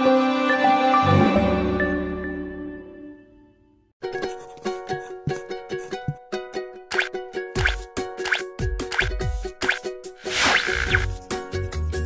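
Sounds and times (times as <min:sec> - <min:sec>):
cartoon plop sound effects: 0:06.9 - 0:11.1.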